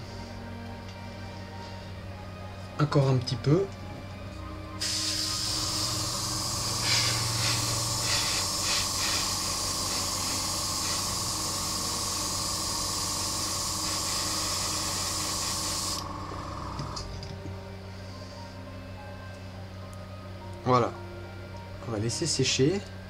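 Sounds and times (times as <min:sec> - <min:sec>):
airbrush spraying hiss: 0:04.8 - 0:16.0.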